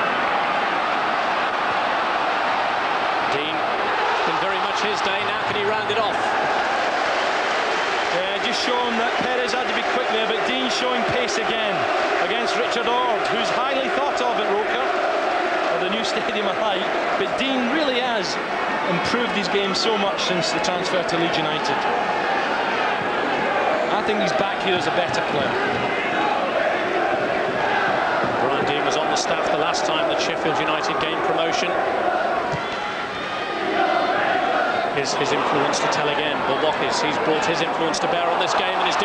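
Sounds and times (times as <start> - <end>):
crowd shouting and calling: 0.0 - 39.0.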